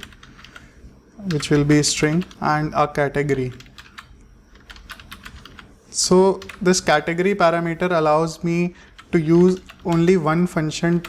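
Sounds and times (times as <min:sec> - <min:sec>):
computer keyboard typing: 0:00.0 - 0:02.7, 0:03.3 - 0:08.0, 0:08.8 - 0:11.0.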